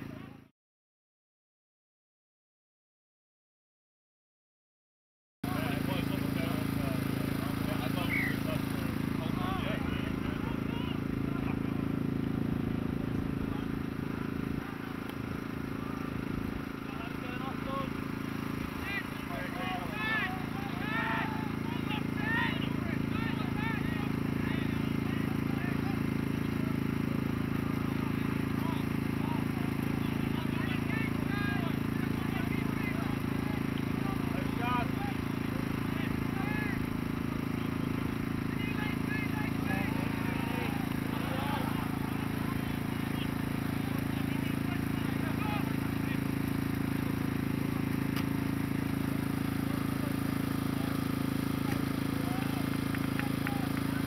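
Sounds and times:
players and spectators shouting: 7.5 - 12.0, 18.6 - 26.2, 27.6 - 46.6.

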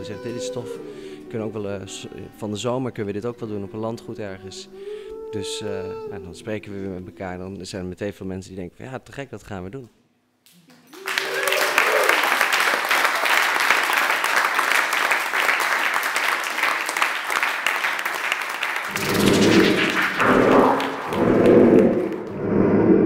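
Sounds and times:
audience applauding: 10.7 - 22.4.

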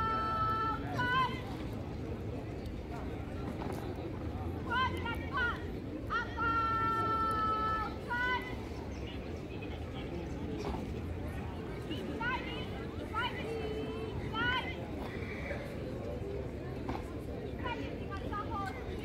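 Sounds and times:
outdoor background noise: 0.0 - 19.0.

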